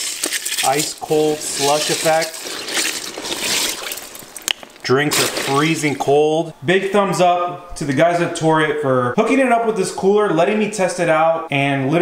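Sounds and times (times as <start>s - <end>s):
water splashing: 0.0s - 6.1s
hand swishing through slush: 0.4s - 4.4s.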